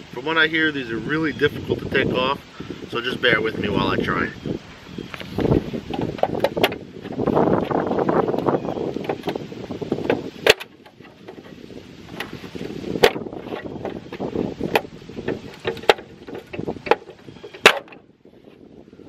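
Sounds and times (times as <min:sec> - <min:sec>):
wind buffeting microphone: 0:00.0 - 0:19.0
plastic wheel cover clicks: 0:10.0 - 0:11.4, 0:14.1 - 0:18.0.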